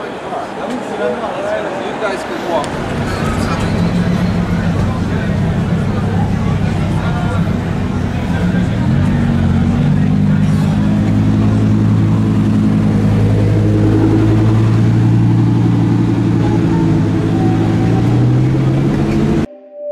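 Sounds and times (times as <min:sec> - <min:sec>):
car engine droning at low revs: 0:02.6 - 0:19.5.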